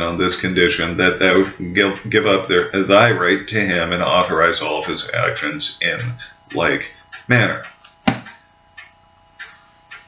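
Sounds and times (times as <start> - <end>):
book knocking down: 8.0 - 8.4.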